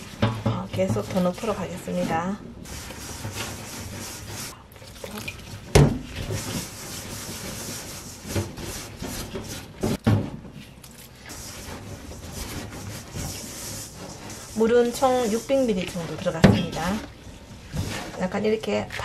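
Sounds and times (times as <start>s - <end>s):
hands scraping dough in steel bowl: 0.0s - 4.6s, 6.1s - 10.0s, 10.6s - 19.0s.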